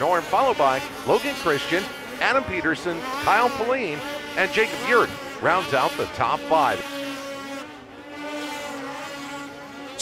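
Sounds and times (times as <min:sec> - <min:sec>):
snowmobile engine revving: 0:00.0 - 0:10.0
snowmobile engines running: 0:00.0 - 0:10.0.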